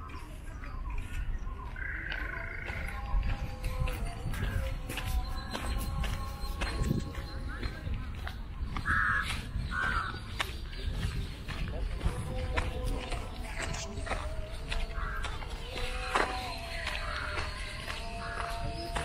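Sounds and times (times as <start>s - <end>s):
faint background voices: 0.0s - 19.0s
crows cawing: 1.8s - 2.9s, 8.8s - 10.6s, 14.8s - 19.0s.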